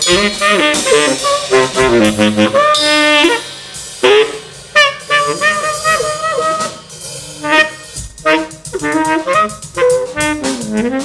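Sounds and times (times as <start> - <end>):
drums: 0.0 - 11.0
tenor saxophone jazz line: 0.0 - 11.0
cymbal strokes: 2.7 - 8.3.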